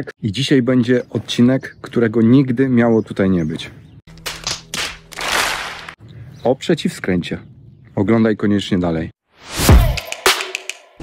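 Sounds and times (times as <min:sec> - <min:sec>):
crowd clapping: 0:04.2 - 0:06.0.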